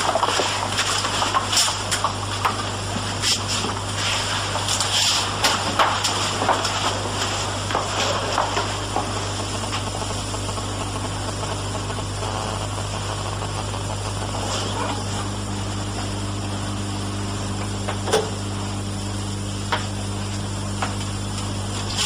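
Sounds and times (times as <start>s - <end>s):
tape hum and hiss: 0.0s - 22.0s.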